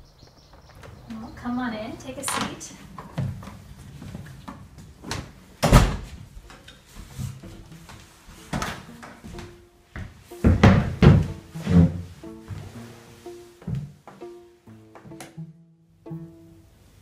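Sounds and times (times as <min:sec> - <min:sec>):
knocks and thumps: 0:02.3 - 0:06.6, 0:07.5 - 0:12.7
chair being sat on: 0:02.3 - 0:07.5, 0:08.4 - 0:09.4, 0:10.4 - 0:12.7
plucked-string background music: 0:04.6 - 0:17.0.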